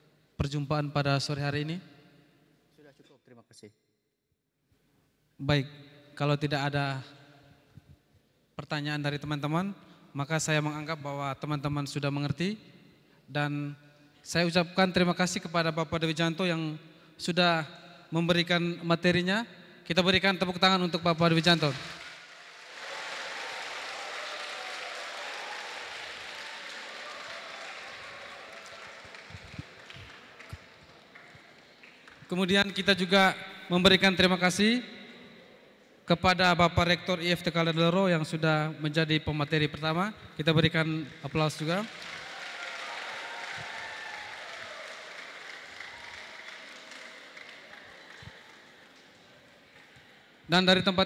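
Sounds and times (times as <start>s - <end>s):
audience applauding: 21.3s - 32.3s, 41.2s - 50.0s.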